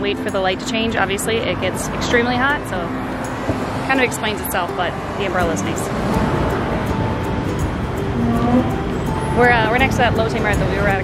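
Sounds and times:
road traffic: 0.0s - 11.0s
steady tone: 0.2s - 11.0s.

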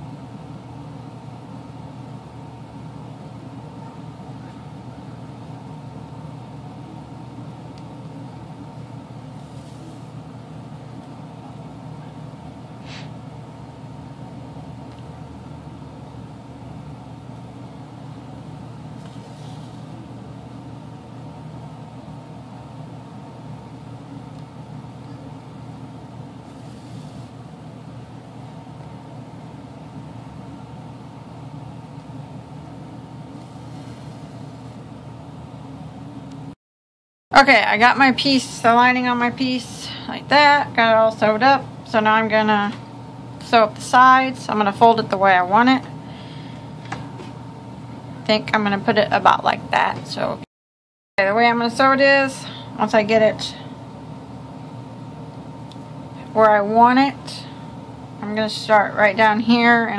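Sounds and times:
low background hum: 0.0s - 36.6s, 37.3s - 50.5s, 51.2s - 59.9s.

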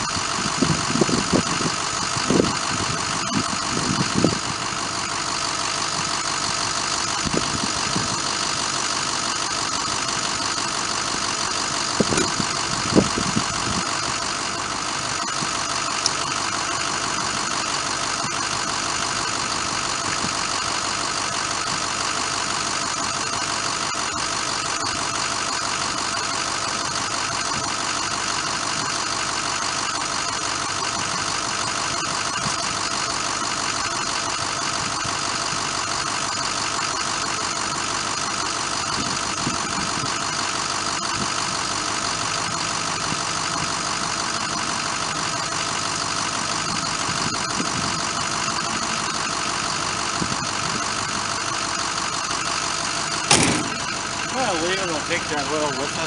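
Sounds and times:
engine idling: 0.0s - 56.0s.

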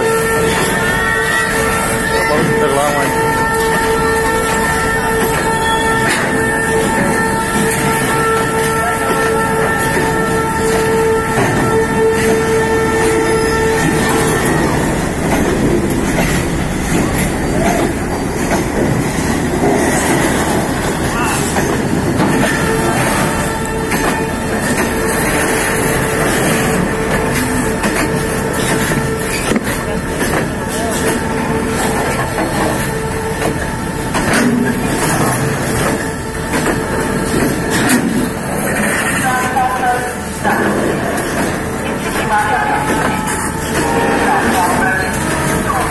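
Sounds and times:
freight train rolling past: 0.0s - 45.9s.

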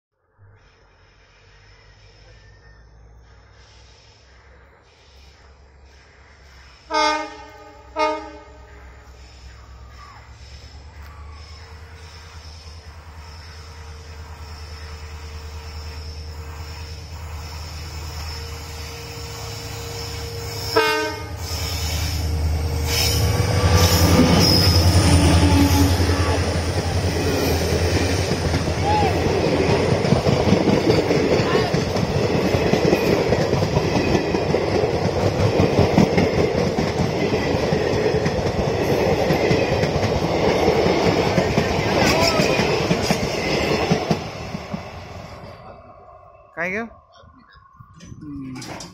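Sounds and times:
diesel locomotive engine drone: 0.1s - 48.9s.

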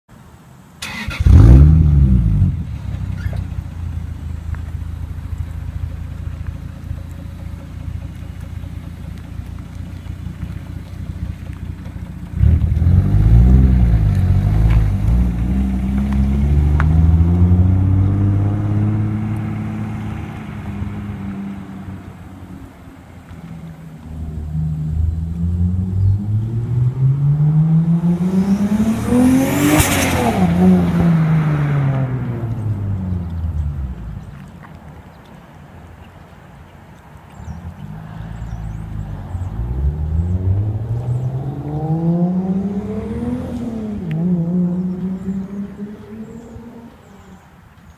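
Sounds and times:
car engine starting and idling: 0.7s - 34.8s
car engine revving and accelerating: 0.8s - 3.4s, 12.2s - 22.8s, 23.6s - 34.5s, 37.4s - 47.4s.

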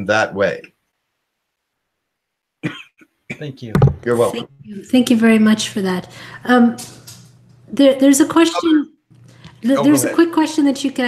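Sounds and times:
short cough: 2.6s - 3.6s.

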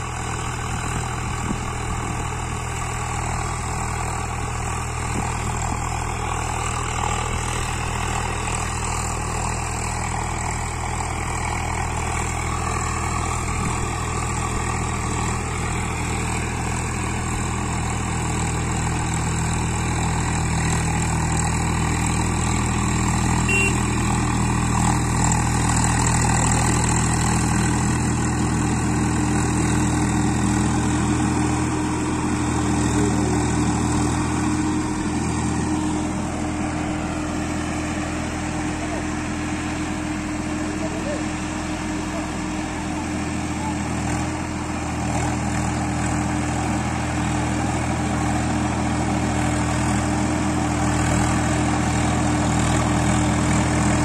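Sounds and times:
tractor diesel engine under load: 0.0s - 54.0s.

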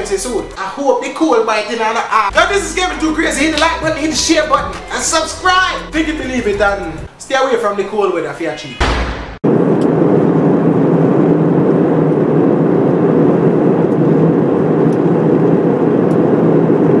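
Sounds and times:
airplane cabin noise: 9.5s - 17.0s.

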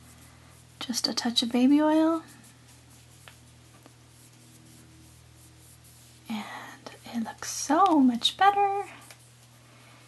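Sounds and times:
fingertips rubbing clay: 0.0s - 8.0s
steady low hum: 0.0s - 10.0s.

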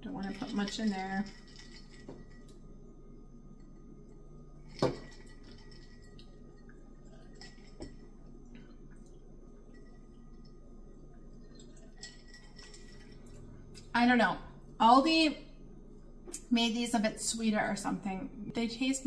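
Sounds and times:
low room hum: 0.0s - 19.0s.

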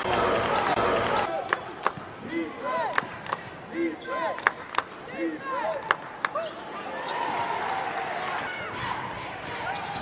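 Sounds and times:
arena crowd noise: 0.0s - 10.0s
sneakers squeaking: 9.6s - 10.0s.

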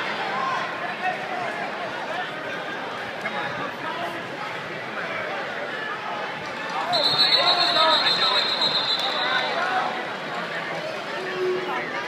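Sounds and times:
arena crowd chatter: 0.0s - 12.0s
long high steady whistle: 6.9s - 9.6s.

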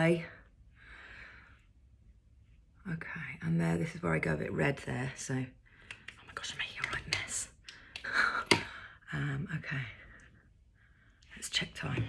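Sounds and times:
woman whispering softly: 2.8s - 4.0s, 6.1s - 7.6s, 9.1s - 10.2s.

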